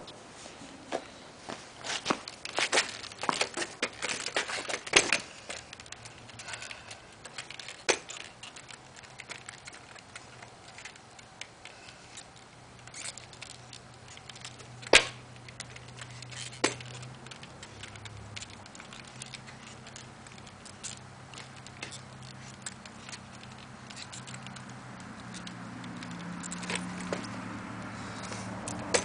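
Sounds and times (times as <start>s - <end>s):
scooter wheels clicking on asphalt: 1.7s - 29.0s.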